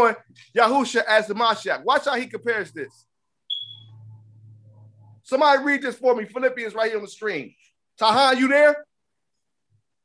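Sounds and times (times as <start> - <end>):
high electronic ping: 3.5 - 3.9.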